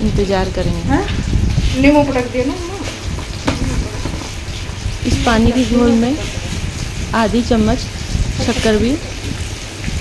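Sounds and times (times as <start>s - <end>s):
water hissing and bubbling in pan: 0.0s - 10.0s.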